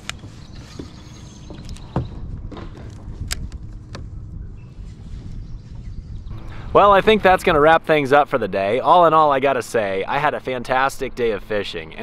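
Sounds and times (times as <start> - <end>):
low steady rumble: 1.3 - 12.0.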